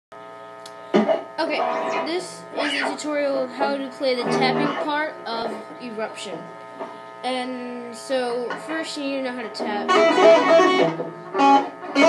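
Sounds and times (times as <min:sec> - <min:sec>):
electric guitar amp hum: 0:00.2 - 0:12.0.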